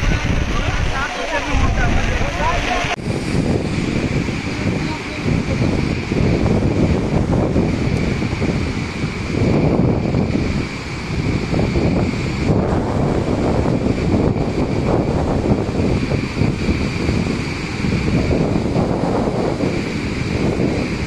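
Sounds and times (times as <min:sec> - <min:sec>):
floodwater roaring over waterfall: 0:00.0 - 0:21.0
wind buffeting microphone: 0:00.0 - 0:21.0.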